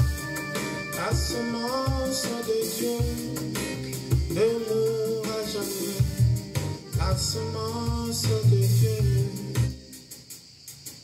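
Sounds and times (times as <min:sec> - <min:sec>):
singing over band backing: 0:00.9 - 0:03.4.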